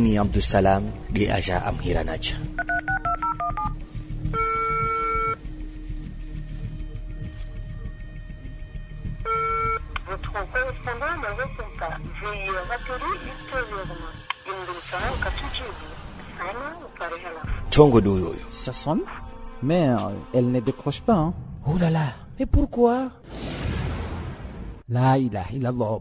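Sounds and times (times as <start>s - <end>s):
keypad dialing tones: 2.6s - 3.8s, 4.4s - 5.4s, 9.3s - 10.3s
telephone ringback tone: 2.6s - 5.4s, 9.2s - 9.9s.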